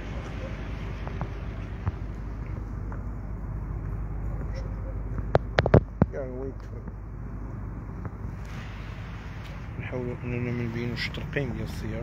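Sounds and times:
low street rumble: 0.0 - 12.0.

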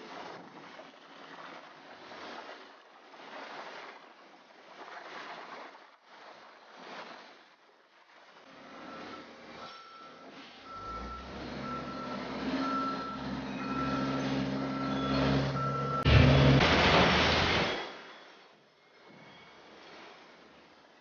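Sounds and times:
heavy machinery droning: 8.5 - 18.1
vehicle backup alarm beeping: 8.6 - 16.6.

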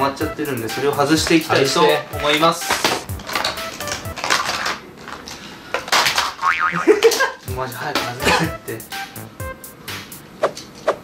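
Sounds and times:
wobbling boing sound effect: 6.4 - 7.0.

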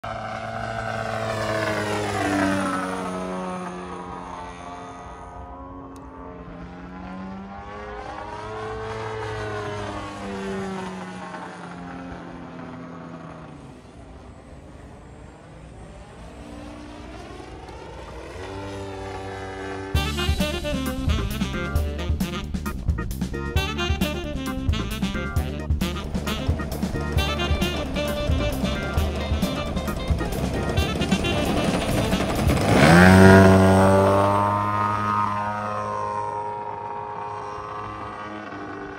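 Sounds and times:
model airplane engine in flight: 0.0 - 38.9.

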